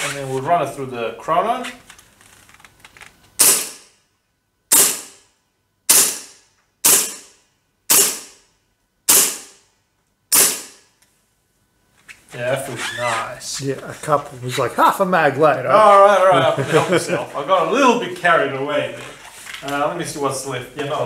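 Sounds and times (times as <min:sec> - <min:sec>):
pistol shots cracking: 0:03.4 - 0:03.8, 0:05.9 - 0:07.3, 0:09.1 - 0:09.5, 0:10.3 - 0:10.8.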